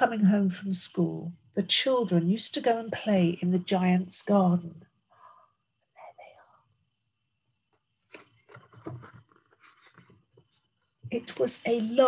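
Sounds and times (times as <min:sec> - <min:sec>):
paper pages being turned: 0:08.0 - 0:10.4.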